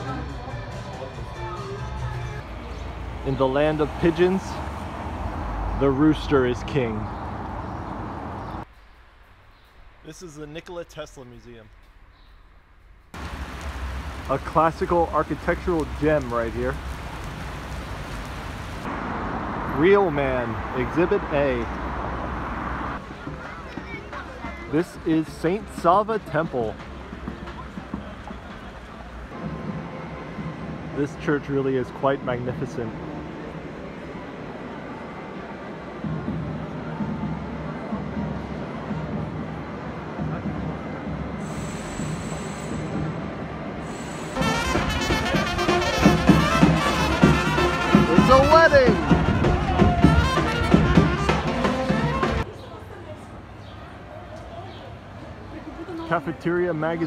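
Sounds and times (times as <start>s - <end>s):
traffic rumble: 0.0s - 57.0s
rain on a wet street: 2.8s - 6.4s, 13.2s - 24.0s, 41.4s - 43.2s, 43.8s - 52.4s.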